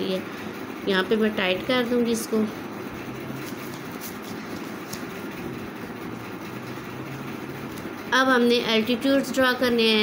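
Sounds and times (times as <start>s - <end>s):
faint continuous hum: 0.0s - 10.0s.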